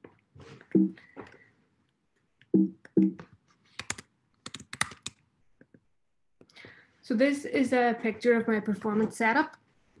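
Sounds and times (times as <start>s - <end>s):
computer keyboard clicks: 3.1s - 5.2s
soft breath: 6.5s - 7.0s
person speaking: 7.0s - 9.7s.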